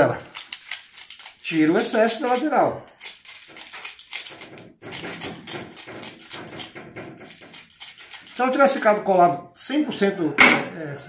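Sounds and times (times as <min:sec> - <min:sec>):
knife scraping sandpaper: 0:00.3 - 0:09.0.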